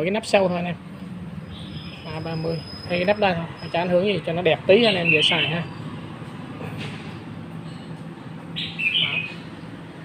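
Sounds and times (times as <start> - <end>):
bird chirping: 1.0 - 4.1, 4.7 - 6.0, 7.6 - 9.8.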